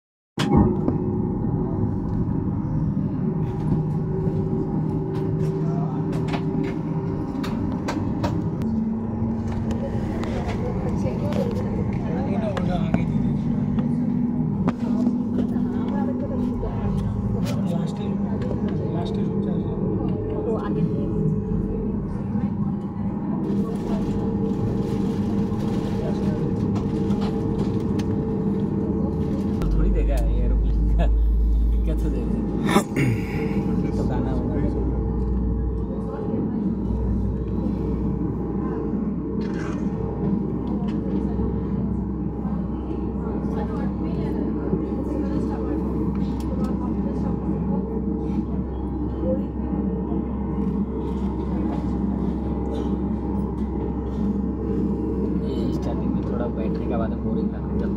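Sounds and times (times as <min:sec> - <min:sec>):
low drones: 0:00.4 - 0:57.9
low rumble of plane moving: 0:00.4 - 0:57.9.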